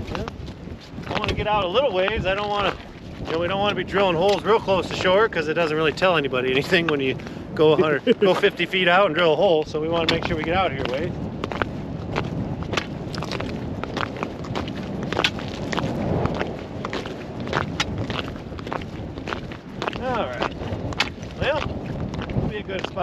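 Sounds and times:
wind rumbling on microphone: 0.0s - 23.0s
boots walking on ice: 10.0s - 23.0s.

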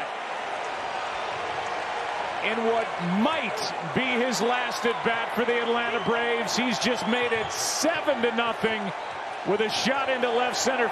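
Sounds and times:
crowd cheering and applauding: 0.0s - 10.9s.

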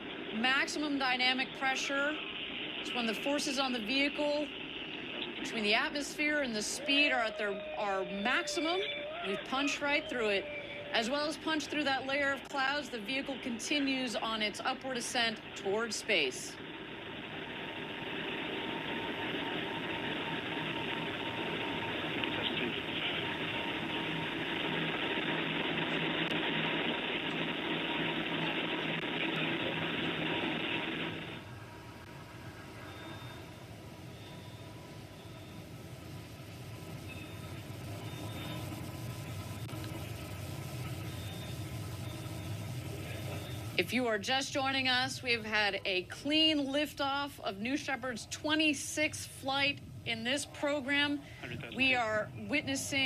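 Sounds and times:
rocket engine rumble: 0.0s - 53.0s.

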